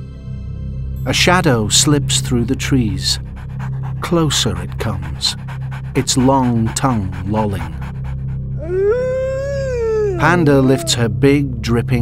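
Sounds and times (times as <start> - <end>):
dog howling: 3.1 - 11.1.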